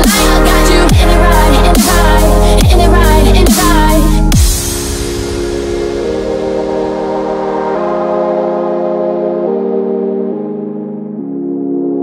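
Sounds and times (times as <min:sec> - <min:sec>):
held synthesizer chords: 0:00.0 - 0:12.0
wash of high noise: 0:04.5 - 0:09.8.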